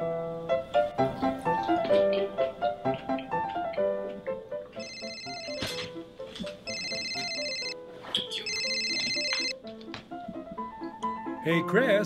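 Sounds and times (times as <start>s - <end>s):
background music: 0.0s - 12.0s
smartphone ringing: 4.8s - 5.8s, 6.6s - 7.8s, 8.4s - 9.6s.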